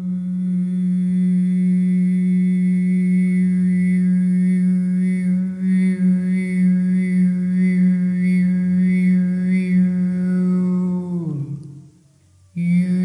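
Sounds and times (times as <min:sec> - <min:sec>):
voice holding sustained tone: 0:00.0 - 0:13.0.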